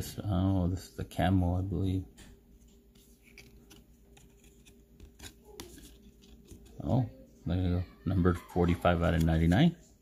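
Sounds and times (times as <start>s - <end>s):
cards rustling and clicking: 2.6s - 6.9s, 8.7s - 9.7s.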